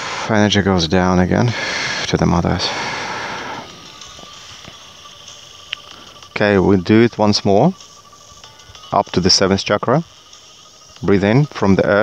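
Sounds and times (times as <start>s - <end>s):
breathy exhale into microphone: 0.0s - 0.3s, 1.5s - 4.5s
soft meditation music: 0.0s - 12.0s.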